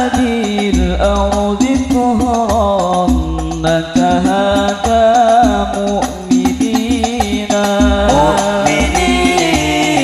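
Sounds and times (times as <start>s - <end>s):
frame drums beating: 0.0s - 10.0s
man singing into microphone: 0.0s - 10.0s.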